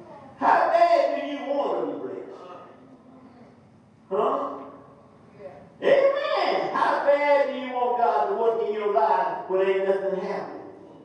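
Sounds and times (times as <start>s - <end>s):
man preaching loudly: 0.4s - 2.4s, 5.8s - 10.8s.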